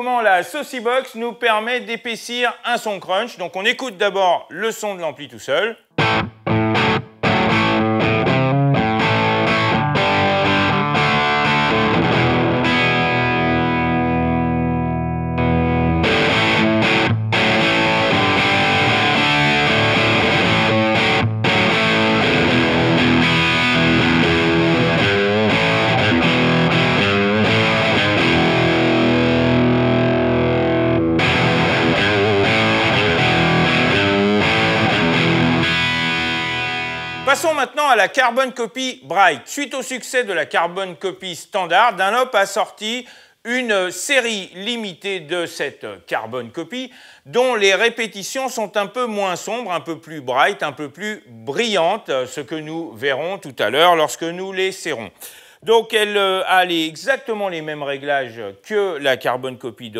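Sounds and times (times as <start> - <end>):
overdriven electric guitar: 5.9 - 37.4.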